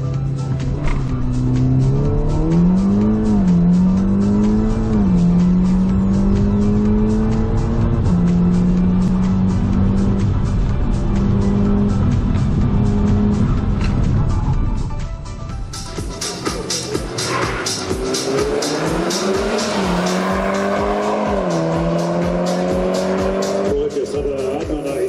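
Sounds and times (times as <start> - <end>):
car engine revving with upshifts: 0.0 - 14.5, 16.2 - 24.1
music with steady beat: 0.0 - 25.0.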